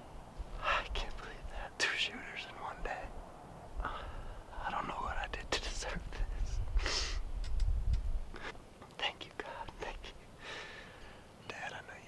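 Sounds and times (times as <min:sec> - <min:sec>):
man whispering: 0:00.6 - 0:03.2, 0:03.8 - 0:07.2, 0:08.3 - 0:10.3, 0:11.4 - 0:12.0.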